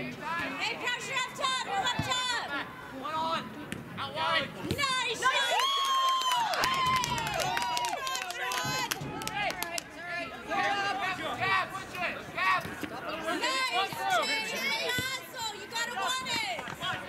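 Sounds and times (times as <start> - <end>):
people shouting and calling out: 0.0 - 17.0.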